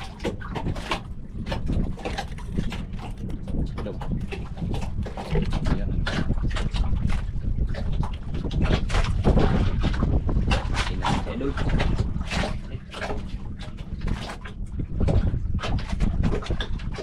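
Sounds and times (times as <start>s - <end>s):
water slapping against boat hull: 0.0s - 17.0s
wind rumbling on microphone: 0.0s - 17.0s.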